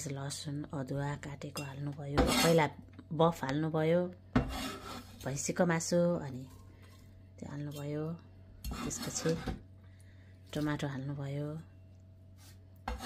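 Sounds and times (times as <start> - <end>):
people talking: 0.0 - 4.2, 5.2 - 6.6, 7.4 - 9.5, 10.6 - 11.7
knife scraping cutting board: 2.2 - 2.6, 4.4 - 5.2, 8.6 - 9.6, 12.4 - 13.0.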